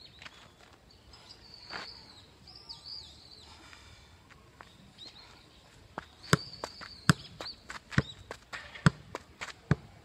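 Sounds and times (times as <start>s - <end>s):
birds whistling: 4.7s - 8.3s.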